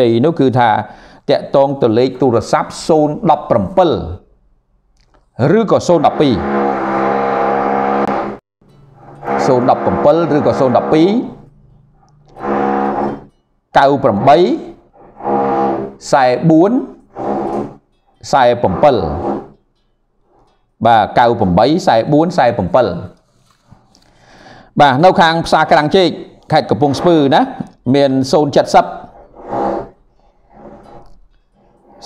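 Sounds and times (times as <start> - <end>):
man speaking: 0.0 - 4.2, 5.4 - 6.4, 9.3 - 11.4, 13.8 - 14.8, 16.0 - 17.0, 18.2 - 19.3, 20.8 - 23.2, 24.8 - 29.1.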